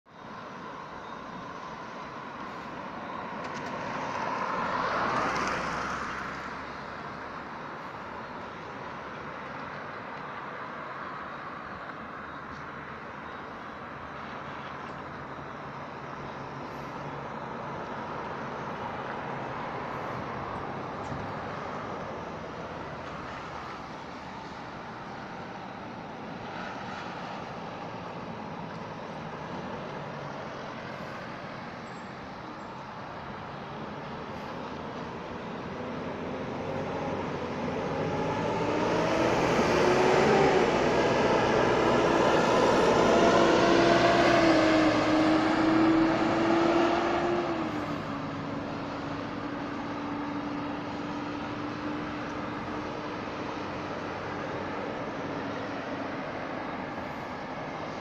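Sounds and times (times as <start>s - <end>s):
vehicle engines and tyres: 0.1s - 58.0s.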